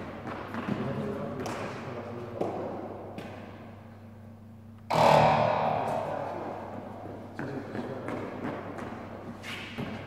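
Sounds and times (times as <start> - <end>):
distorted electric guitar chord: 4.9 - 6.8.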